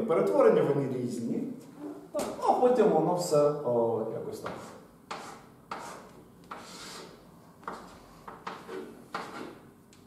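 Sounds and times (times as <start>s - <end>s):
chalk on blackboard: 4.4s - 9.7s.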